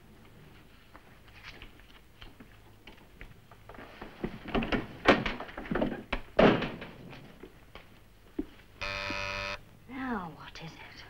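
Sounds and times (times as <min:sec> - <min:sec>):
door banging and thudding: 0:04.6 - 0:07.0
short electric buzz: 0:08.8 - 0:09.6.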